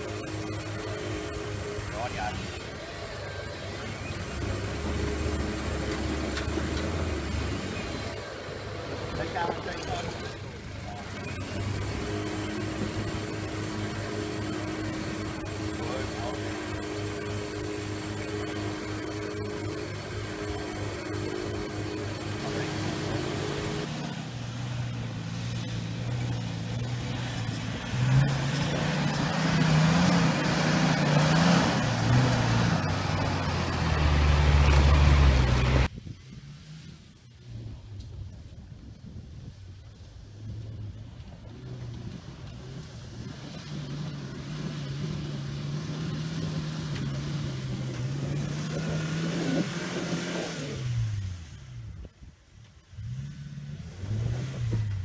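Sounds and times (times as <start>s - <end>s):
engine running at low revs: 0.0s - 55.0s
second vehicle engine: 0.0s - 55.0s.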